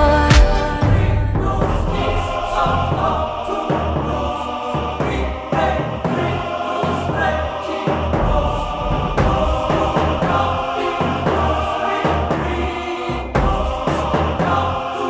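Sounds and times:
heavy pulsing bass line: 0.0s - 6.4s, 7.1s - 14.8s
choir-like vocal: 0.0s - 15.0s.

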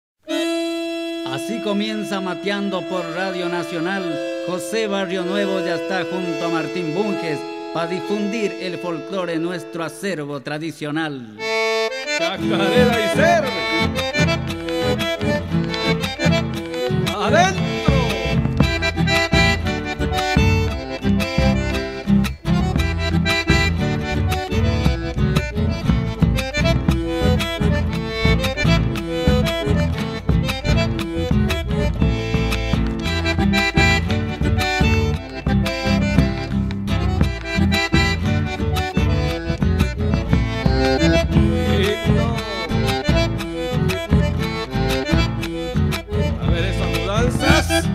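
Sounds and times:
accordion folk music: 0.2s - 47.9s
low rhythm section: 11.4s - 47.9s.

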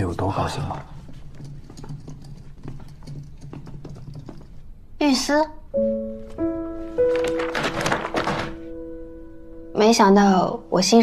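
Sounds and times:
light irregular taps and clicks: 0.8s - 4.7s.

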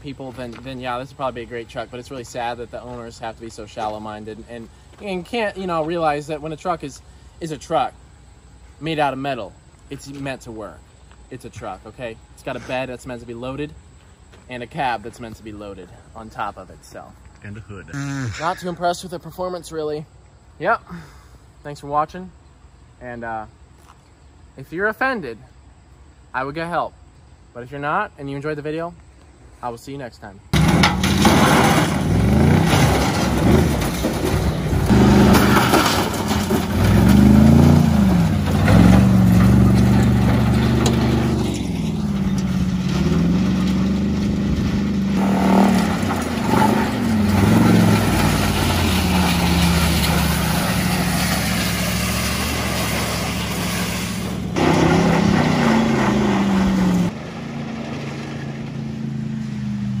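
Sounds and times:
truck engine revving: 17.4s - 18.9s, 30.6s - 60.0s.

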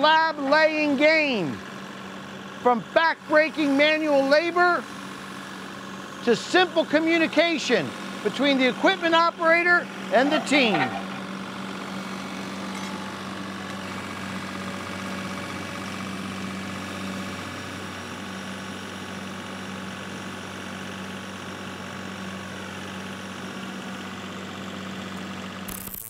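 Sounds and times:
machinery humming: 4.4s - 16.5s.

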